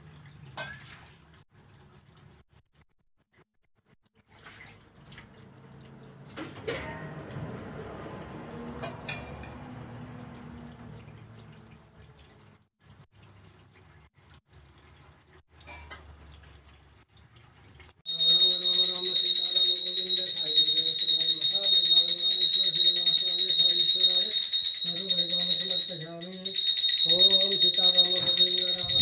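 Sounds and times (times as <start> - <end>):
water trickling and splashing: 0.0 - 2.6, 4.1 - 18.1
fast-ringing bell: 18.1 - 29.0.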